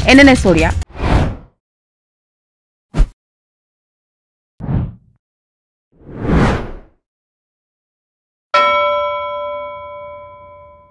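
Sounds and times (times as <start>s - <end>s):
bell-like chime: 8.6s - 10.9s.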